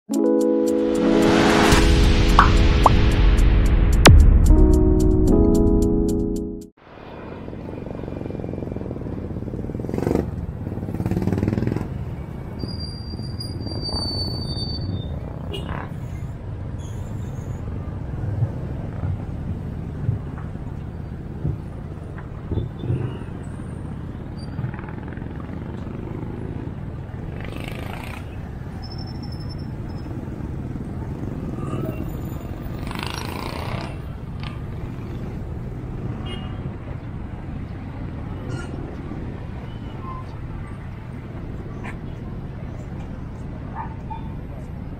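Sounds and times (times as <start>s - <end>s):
intro music: 0.1s - 6.8s
traffic rumble: 6.8s - 44.9s.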